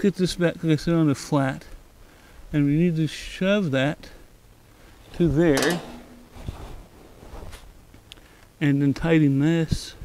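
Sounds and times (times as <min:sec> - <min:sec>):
hands handling metal parts: 0:05.0 - 0:06.8.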